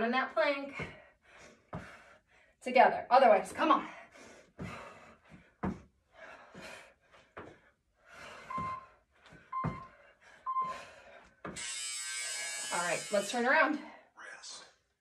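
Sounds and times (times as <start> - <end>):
hands and feet thumping rubber floor: 0.7 - 1.1, 1.7 - 2.1, 4.5 - 7.7, 8.3 - 11.6
person panting: 0.8 - 2.6, 3.8 - 11.6
interval timer short beeps: 8.5 - 8.9, 9.5 - 9.9, 10.5 - 10.8
long buzzer: 11.6 - 13.5.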